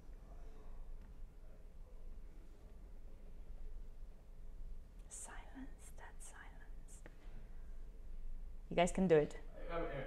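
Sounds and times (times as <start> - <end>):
person whispering: 5.1 - 7.0.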